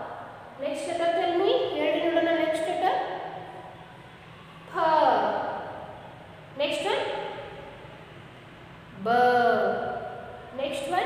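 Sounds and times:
woman speaking: 0.0s - 3.3s, 4.7s - 5.7s, 6.6s - 7.4s, 9.0s - 11.0s
low room noise: 0.0s - 11.0s.

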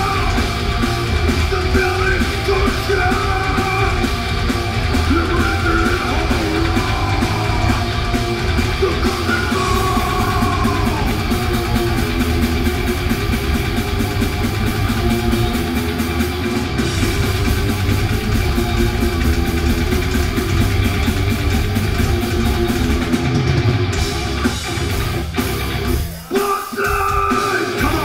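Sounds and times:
bass guitar: 0.0s - 28.0s
drum kit fast beat: 0.0s - 28.0s
electric guitars: 0.0s - 28.0s.

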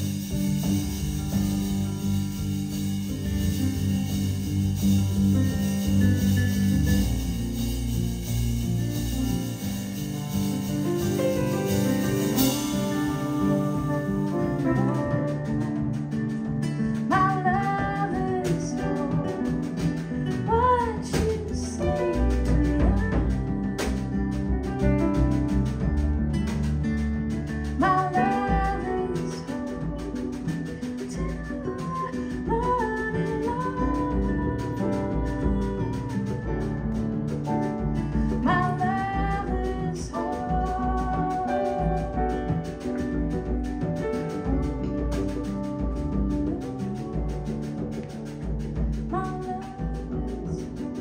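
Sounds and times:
acoustic guitar: 0.0s - 51.0s
drum kit: 0.0s - 51.0s
piano: 0.0s - 51.0s
upright double bass: 0.0s - 51.0s
woman singing: 12.3s - 25.4s, 27.6s - 43.2s, 44.3s - 51.0s.

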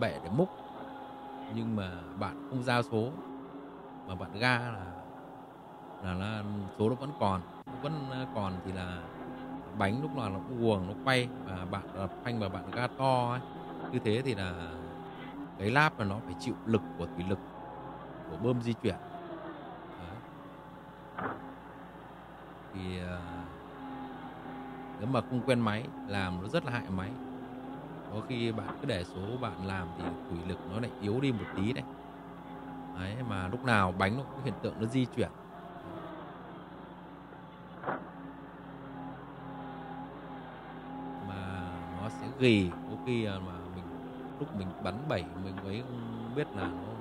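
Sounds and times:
excavator engine humming: 0.0s - 47.0s.

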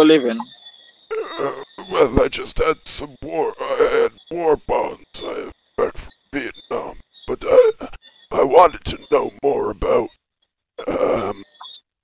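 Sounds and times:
man's wordless vocal noise: 1.1s - 10.2s, 10.8s - 11.4s.

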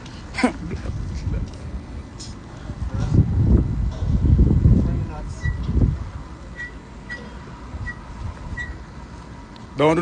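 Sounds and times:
wind rumble on microphone: 0.6s - 6.4s, 7.6s - 8.8s.

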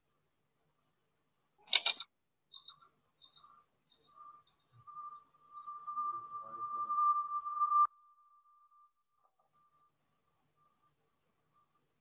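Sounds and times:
high-pitched electronic tone: 4.0s - 8.0s.

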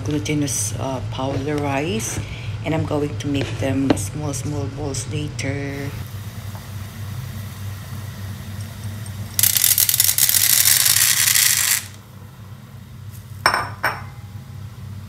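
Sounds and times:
steady low hum: 0.0s - 15.0s
pellets pouring and rattling: 9.4s - 12.0s.

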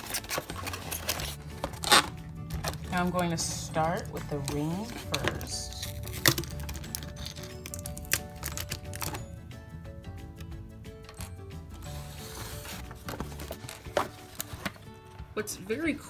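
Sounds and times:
toy packaging clicks and rustles: 0.0s - 9.3s, 11.0s - 14.9s
background music with held notes: 0.0s - 16.0s.

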